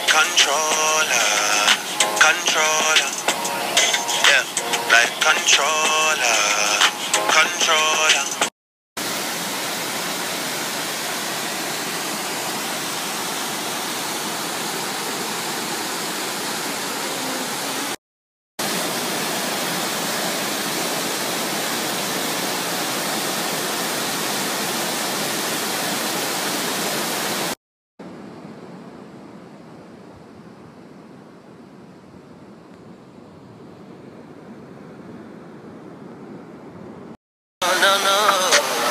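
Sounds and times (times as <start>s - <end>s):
waterfall rushing over rock: 0.0s - 18.0s, 18.6s - 27.6s, 37.6s - 38.9s.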